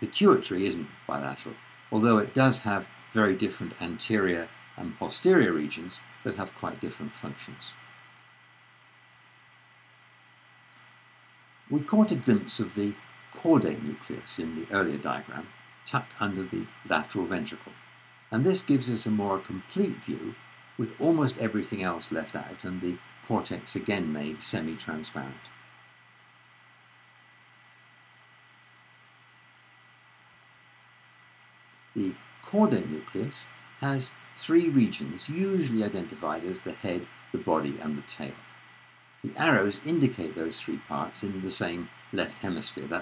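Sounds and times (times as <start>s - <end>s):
faint noise floor hiss: 0.0s - 43.0s
thin high whine: 0.0s - 43.0s.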